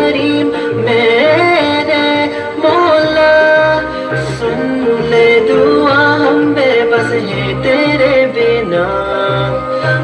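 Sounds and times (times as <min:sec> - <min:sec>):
backing music with low bass: 0:00.0 - 0:10.0.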